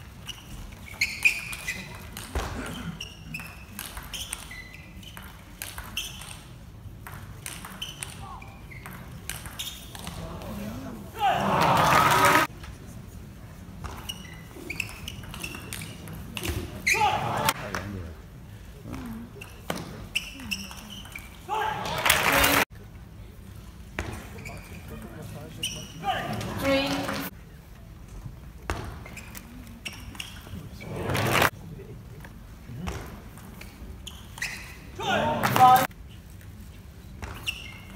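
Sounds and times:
crowd cheering and shouting: 11.2 - 12.5.

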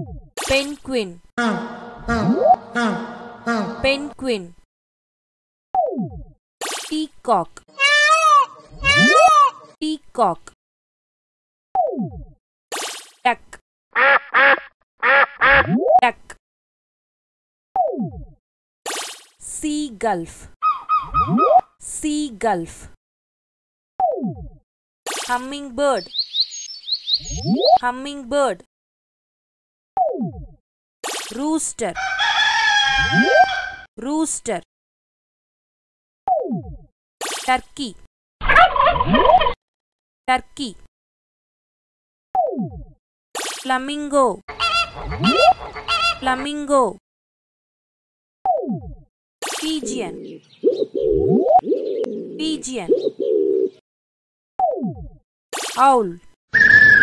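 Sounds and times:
duck quacking: 1.4 - 4.1, 14.0 - 15.6, 44.5 - 46.6
turkey gobbling: 7.8 - 9.6, 20.6 - 21.3, 32.0 - 33.9, 38.5 - 39.4, 44.5 - 46.4.

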